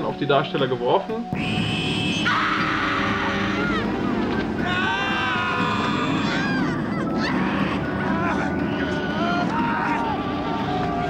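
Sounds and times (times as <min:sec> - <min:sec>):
high wailing cries: 0:01.4 - 0:11.0
low droning rumble: 0:01.4 - 0:11.0.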